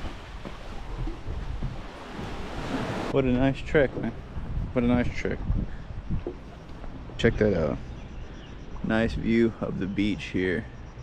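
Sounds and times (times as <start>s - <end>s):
sea waves washing: 0.0s - 3.4s
wind rushing over microphone: 4.1s - 6.3s.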